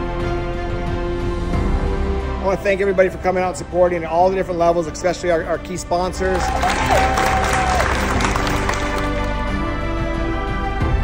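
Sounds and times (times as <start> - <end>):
music with long held notes: 0.0 - 11.0.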